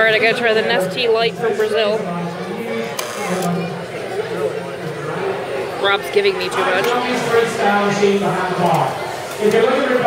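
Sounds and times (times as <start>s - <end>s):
man talking in large hall: 0.2s - 10.0s.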